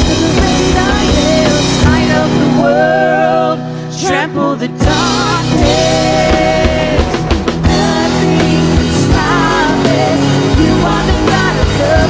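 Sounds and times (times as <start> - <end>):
drum kit beat: 0.0 - 3.3, 4.2 - 12.0.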